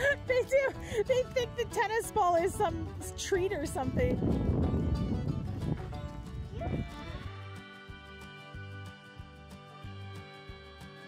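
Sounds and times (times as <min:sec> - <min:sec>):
background music: 0:00.0 - 0:11.0
goat bleating: 0:06.5 - 0:11.0.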